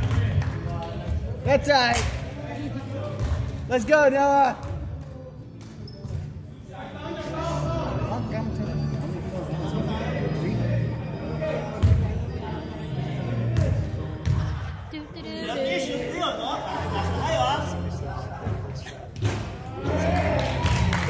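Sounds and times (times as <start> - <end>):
echoing voices in gym: 0.0 - 21.0.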